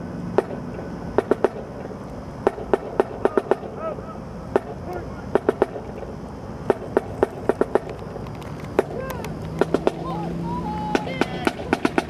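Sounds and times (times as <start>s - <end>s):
marching drum cadence: 2.4s - 3.9s, 4.5s - 6.0s, 10.9s - 12.0s.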